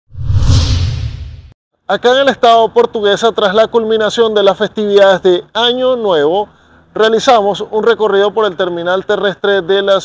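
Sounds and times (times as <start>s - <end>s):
whoosh with deep rumble: 0.1s - 1.6s.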